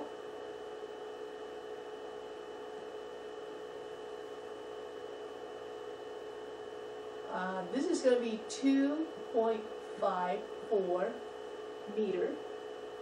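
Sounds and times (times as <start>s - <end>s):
mid-pitched drone: 0.0s - 1.4s, 6.1s - 13.0s.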